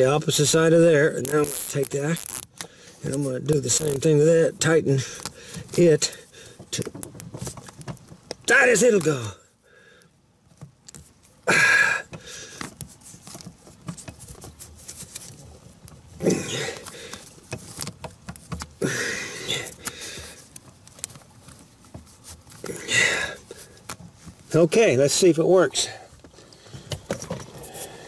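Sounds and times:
cable ties zipping tight: 1.0s - 4.1s.

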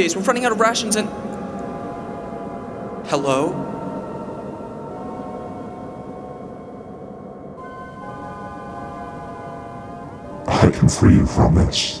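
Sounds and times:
sustained synth drone: 0.0s - 12.0s.

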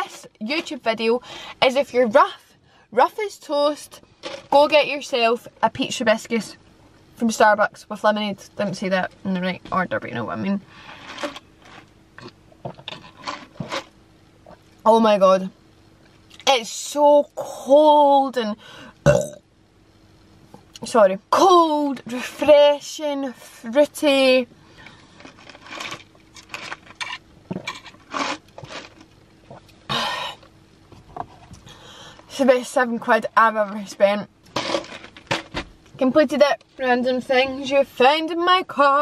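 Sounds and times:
ice crunching in plastic cup: 12.9s - 13.9s, 25.2s - 29.1s, 34.5s - 35.5s
person gulping drink: 19.0s - 19.4s.

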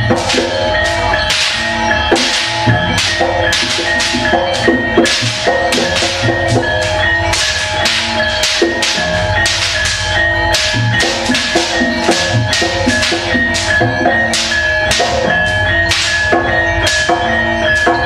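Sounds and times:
drums: 0.0s - 18.0s
gamelan ensemble playing: 0.0s - 18.0s.

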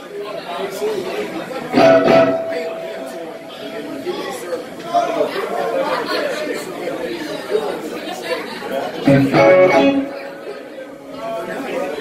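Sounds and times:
crowd chatter: 0.0s - 12.0s
electric guitar playing: 1.8s - 3.2s, 9.0s - 10.4s.

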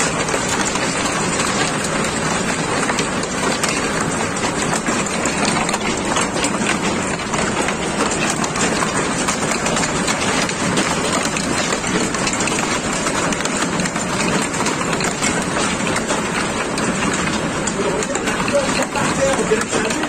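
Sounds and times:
hail pelting down: 0.0s - 20.0s.

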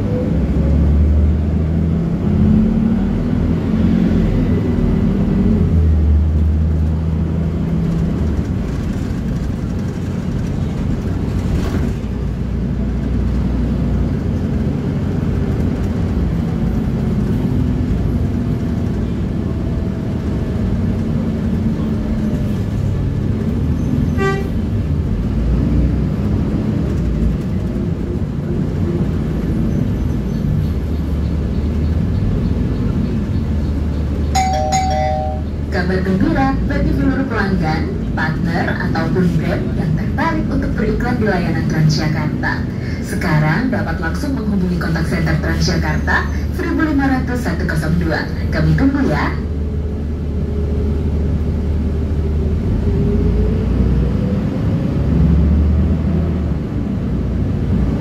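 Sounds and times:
bus engine hum: 0.0s - 58.0s
road noise: 0.0s - 58.0s.

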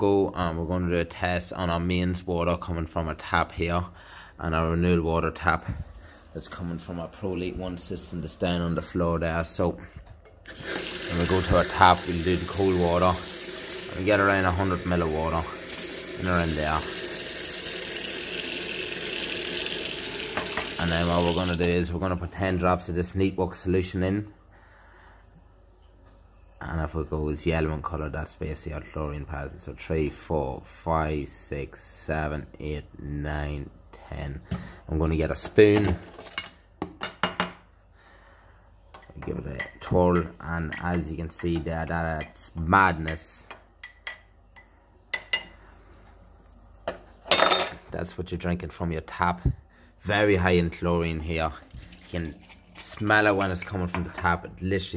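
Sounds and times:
tap water running into a sink: 10.5s - 21.8s.

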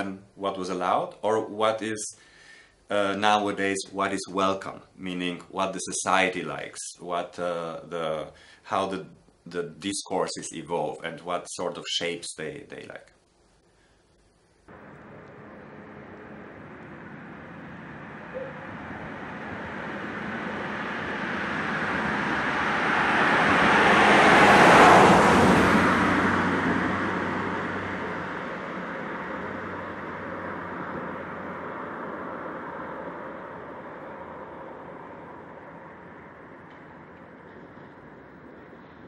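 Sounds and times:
vehicle passing close by: 14.7s - 39.0s.

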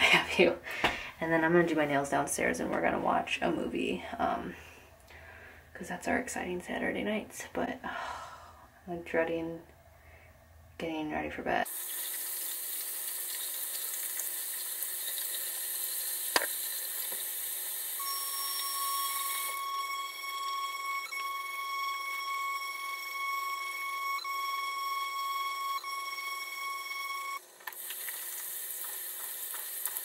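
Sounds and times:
tap water running into sink: 11.7s - 19.6s, 27.7s - 30.0s
electric facial brush humming: 11.7s - 30.0s.

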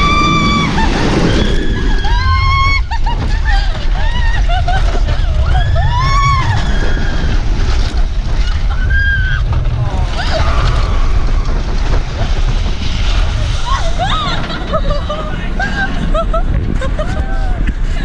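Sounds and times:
riders screaming: 0.0s - 3.0s, 4.3s - 12.5s
roller coaster train rumble: 0.0s - 18.0s
wind buffeting microphone: 0.0s - 18.0s.

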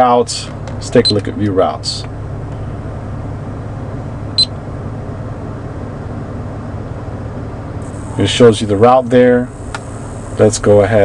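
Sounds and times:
low cabin hum: 0.0s - 11.0s.

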